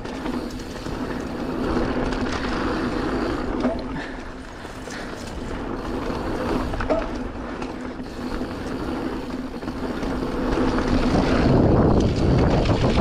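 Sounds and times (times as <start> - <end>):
bike tyres rolling over dirt: 0.0 - 13.0.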